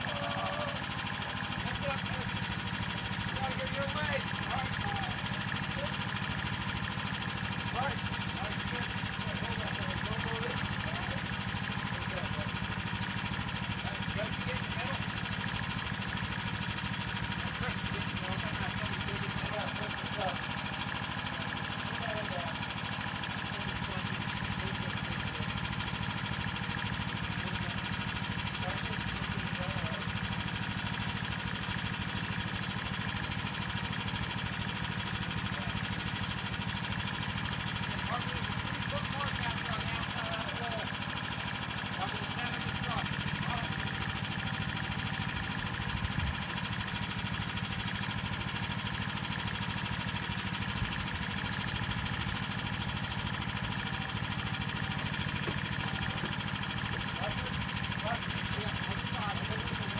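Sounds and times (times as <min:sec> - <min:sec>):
engine running steadily: 0:00.0 - 0:59.9.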